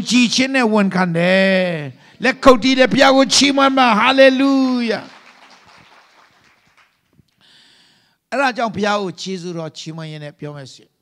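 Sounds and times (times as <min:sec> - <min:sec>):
man's amplified voice: 0:00.0 - 0:05.2, 0:08.3 - 0:10.9.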